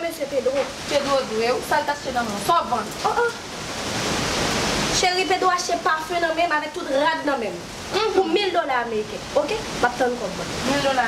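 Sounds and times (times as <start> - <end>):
woman speaking: 0.0 - 3.4, 5.0 - 11.0.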